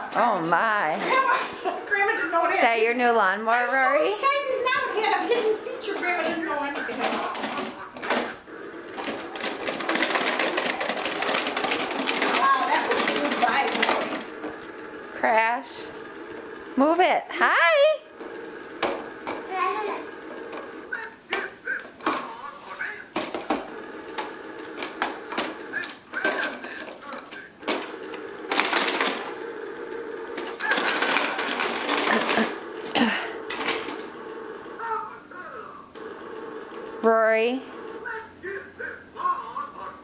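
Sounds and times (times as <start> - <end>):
toy lawn mower rattling and clicking: 3.7 - 17.0, 18.1 - 22.2, 23.1 - 37.1.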